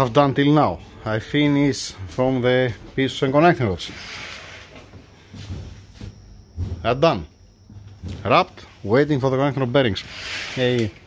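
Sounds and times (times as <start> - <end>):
curtain fabric rustling: 3.8 - 5.6, 10.0 - 10.8.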